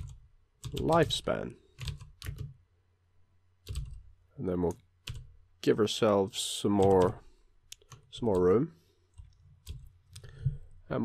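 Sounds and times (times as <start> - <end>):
computer keyboard keystrokes: 1.8 - 2.6, 3.6 - 4.0, 6.8 - 8.5, 9.2 - 10.6.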